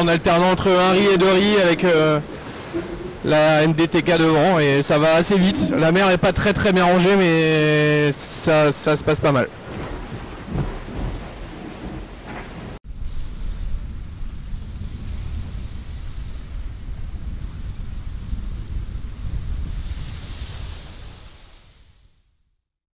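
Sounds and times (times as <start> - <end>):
wind buffeting the microphone: 0.0 - 7.4, 9.2 - 22.1
rushing water and spray: 0.0 - 22.1
deep rumble: 4.8 - 6.2, 9.6 - 21.0.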